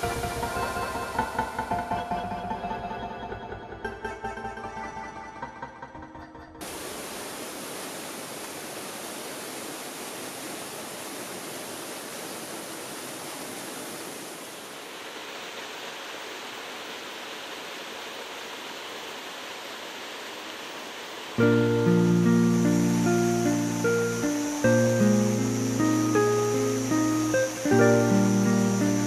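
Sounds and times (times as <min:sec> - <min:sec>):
mountain stream flowing: 0:06.6 - 0:29.0
acoustic guitar music: 0:21.4 - 0:29.0.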